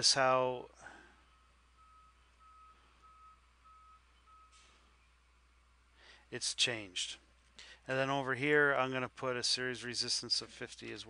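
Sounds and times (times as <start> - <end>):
faint high beeps: 0.8 - 5.4.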